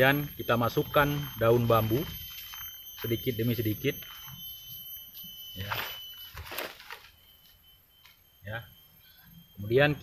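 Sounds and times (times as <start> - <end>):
dry leaves rustling and crackling: 5.7 - 7.2.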